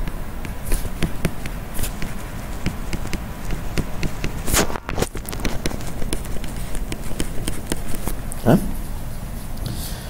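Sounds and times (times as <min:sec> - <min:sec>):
stylus tapping on screen: 0:00.0 - 0:08.4.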